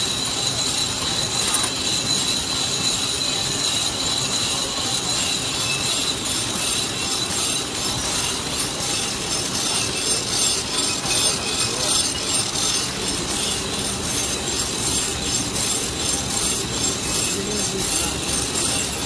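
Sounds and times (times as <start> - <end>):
packing machine clatter: 1.0 - 1.9.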